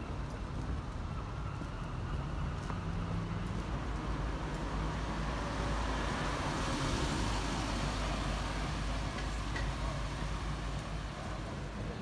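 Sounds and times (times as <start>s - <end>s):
car engine and tyre rumble: 0.0s - 12.0s.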